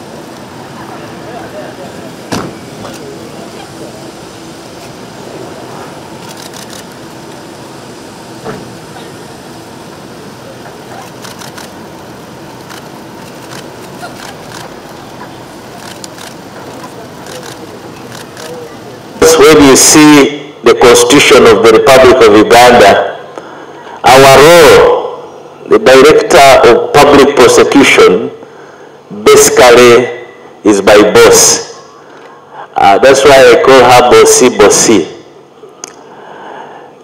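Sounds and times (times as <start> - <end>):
murmur of voices: 0.5 - 6.4, 13.8 - 19.4
sharp knock: 2.3 - 2.6.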